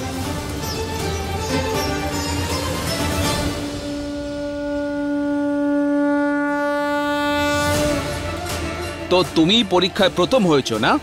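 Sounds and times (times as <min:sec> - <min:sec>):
long reedy note in dramatic score: 0:01.7 - 0:09.1.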